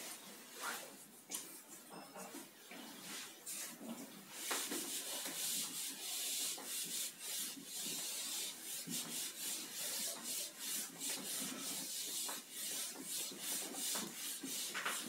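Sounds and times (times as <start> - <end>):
eraser rubbing on whiteboard: 4.4 - 15.0.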